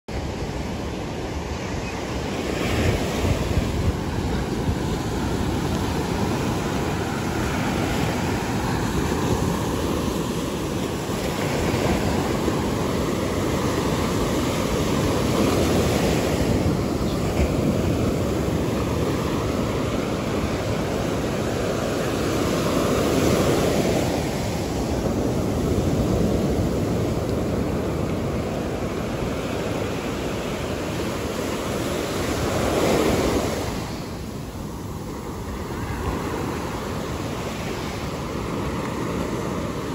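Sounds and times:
waves breaking on beach: 0.1 - 39.9.

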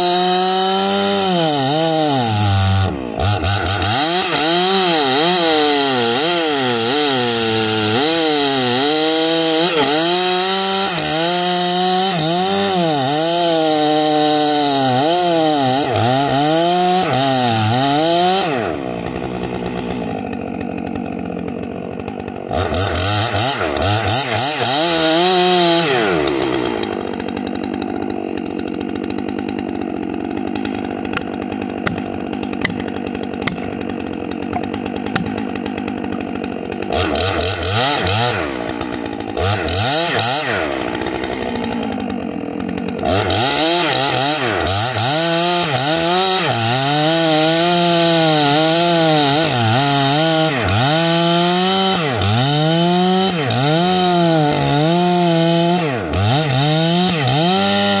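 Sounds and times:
chainsaw cutting log: 0.0 - 58.0
hammer knocking wedge: 31.1 - 33.8, 34.5 - 35.4.

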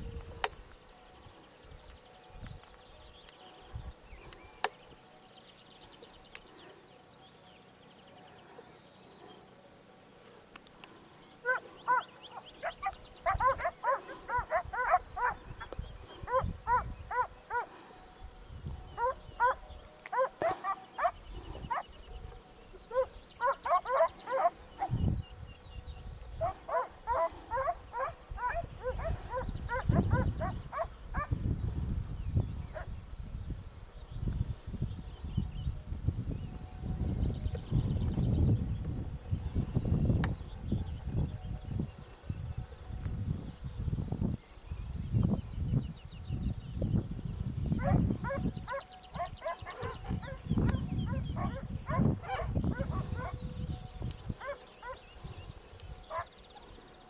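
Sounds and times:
insect chirring: 0.0 - 57.0.

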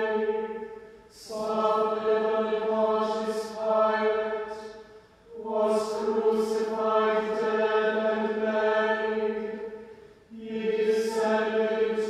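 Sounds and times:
voices chanting in unison: 0.0 - 12.0.

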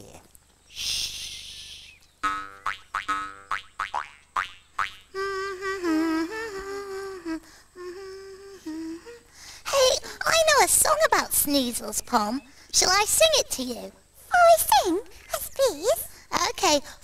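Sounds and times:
person humming a tune: 5.1 - 9.3.

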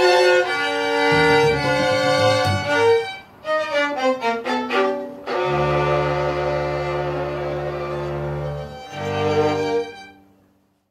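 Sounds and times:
string ensemble playing: 0.0 - 10.2.

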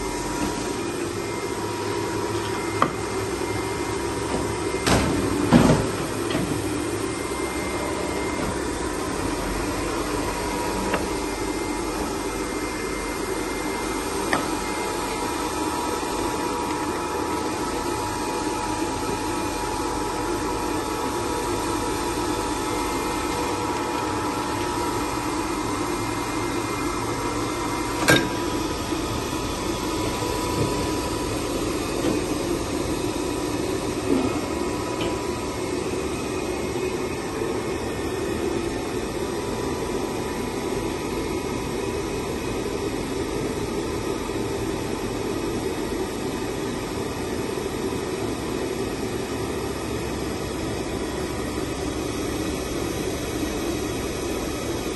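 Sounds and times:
paper guillotine machine hum: 0.0 - 54.9.

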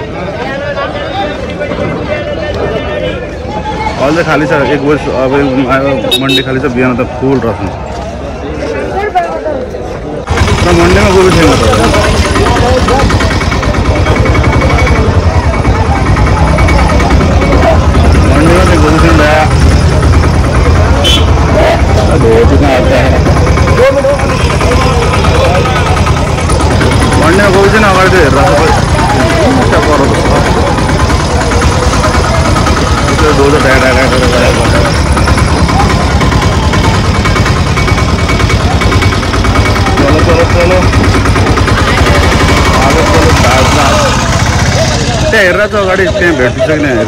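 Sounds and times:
people talking: 0.0 - 47.0
vehicle engines rumbling: 0.0 - 47.0.

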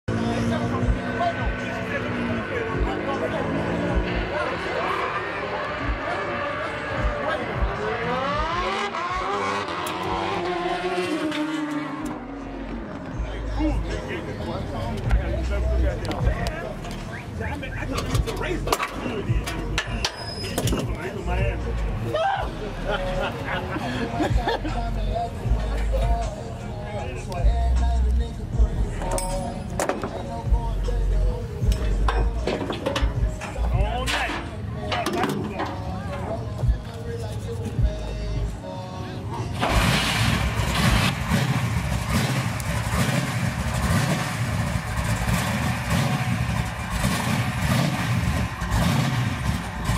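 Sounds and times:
music beat with heavy bass: 0.1 - 4.8, 5.6 - 14.2, 14.9 - 34.3, 35.0 - 38.7, 39.6 - 49.9
car engine revving: 0.1 - 38.5, 39.4 - 49.9.

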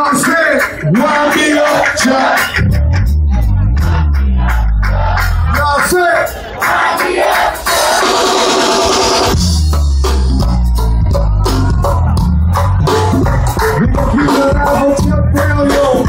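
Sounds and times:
bass: 0.0 - 6.6, 7.6 - 16.0
drum and percussion beat: 0.0 - 16.0.

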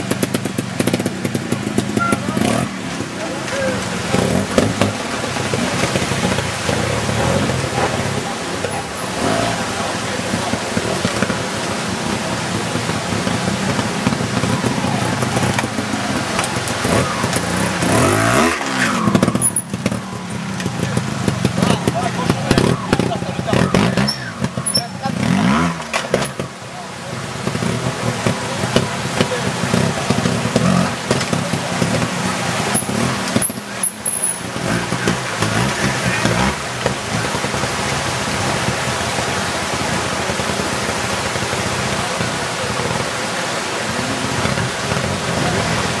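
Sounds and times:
motorcycle engine revving: 0.0 - 46.0
steady rush of noise: 0.0 - 46.0.

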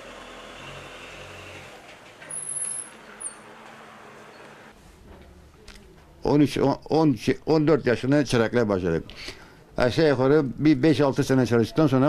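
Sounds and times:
road traffic: 0.0 - 4.8.

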